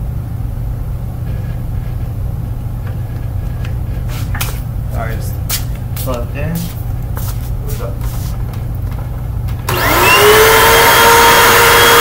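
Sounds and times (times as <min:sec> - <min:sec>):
steady low hum: 0:00.0 - 0:10.4
flip-flop footsteps on concrete: 0:02.9 - 0:04.7, 0:05.4 - 0:09.6.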